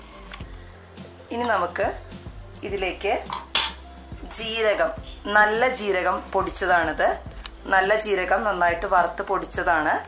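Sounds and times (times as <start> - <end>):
metal ladle clinking on pot: 3.3 - 3.8.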